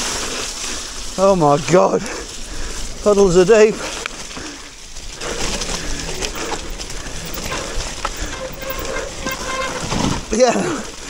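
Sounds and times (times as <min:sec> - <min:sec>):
bike rattling over bumps: 0:00.0 - 0:11.0
bike tyres in mud: 0:00.0 - 0:11.0.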